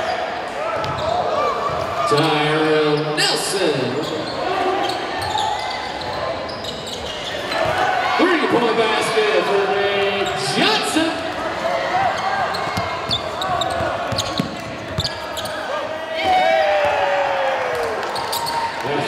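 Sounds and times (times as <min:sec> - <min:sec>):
players calling out: 0:00.0 - 0:19.0.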